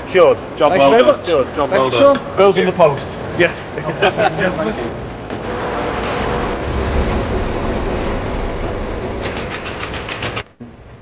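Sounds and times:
train rumbling: 4.0 - 11.0
fast run of clicks: 9.2 - 10.6.

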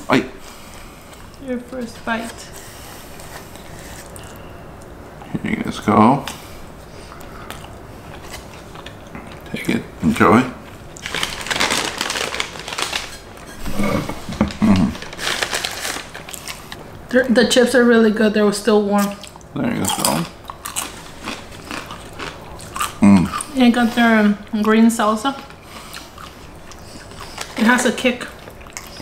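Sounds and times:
room noise: 0.0 - 29.0
chewing crunchy food: 7.1 - 9.7, 10.7 - 16.8, 19.0 - 24.8, 25.4 - 29.0.

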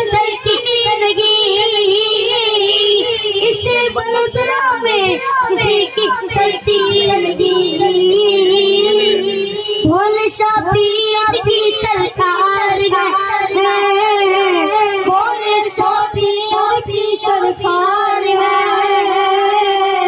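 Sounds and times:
boy singing into a microphone: 0.0 - 20.0
steady held note: 5.0 - 10.0.

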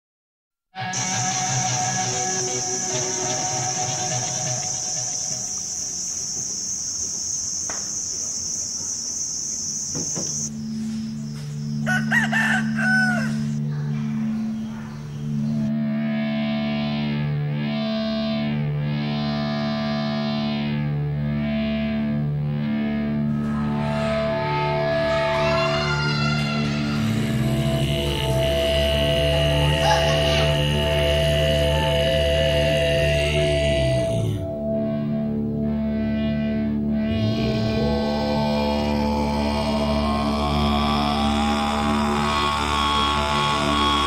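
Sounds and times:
melodic music: 0.8 - 5.6
low steady drone: 0.8 - 5.9, 12.6 - 44.0
high-pitched hiss: 1.0 - 11.3
rooster crowing: 11.8 - 13.6.

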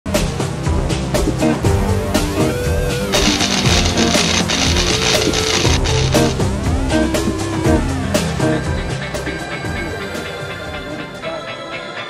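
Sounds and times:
drums: 0.1 - 11.4
electric guitar: 3.1 - 7.8
heavy rock music: 3.1 - 8.6.

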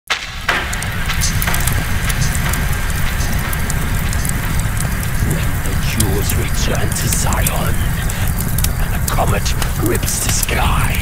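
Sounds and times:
rain-like crackling noise: 0.1 - 11.0
low rumbling drone: 0.2 - 11.0.

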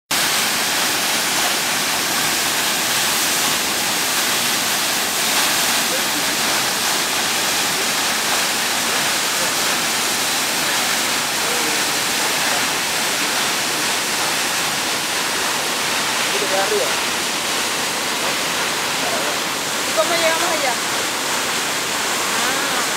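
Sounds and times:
waterfall rushing onto rocks: 0.1 - 22.9.

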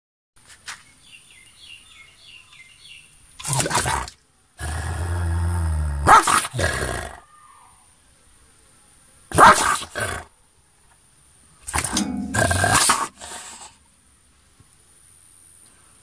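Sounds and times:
dog barking: 6.0 - 6.5, 9.3 - 9.8
faint bird chirps: 7.2 - 7.9.

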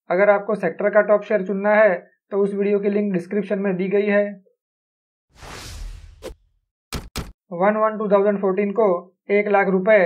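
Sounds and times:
whoosh transition effect: 5.3 - 6.5.

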